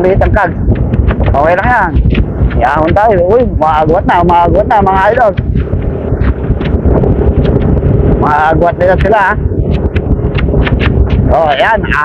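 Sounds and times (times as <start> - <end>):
motorcycle engine humming: 0.0 - 12.0
wind buffeting microphone: 0.0 - 12.0.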